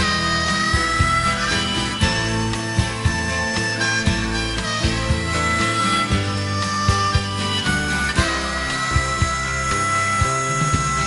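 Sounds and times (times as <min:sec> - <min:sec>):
rock music instrumental: 0:00.0 - 0:11.0.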